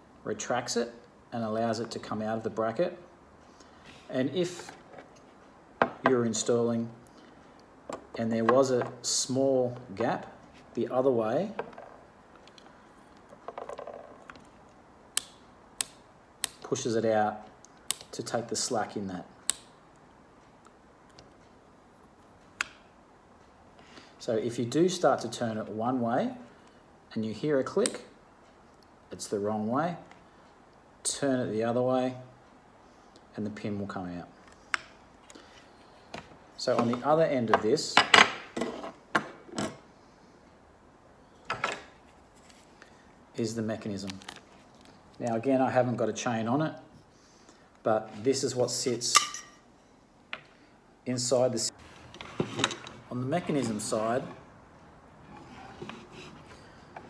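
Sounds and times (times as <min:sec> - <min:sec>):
rattling scrape of blind mechanism: 0:55.2 - 0:57.0.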